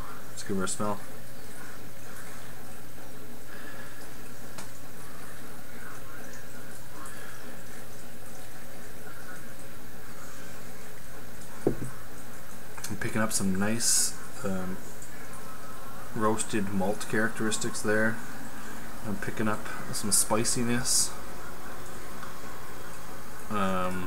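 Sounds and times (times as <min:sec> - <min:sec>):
glass set down knock: 0:11.6 - 0:12.0.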